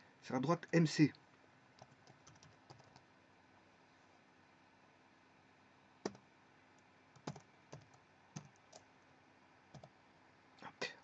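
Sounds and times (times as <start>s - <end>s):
computer keyboard keystrokes: 1.8s - 3.0s, 7.2s - 8.9s.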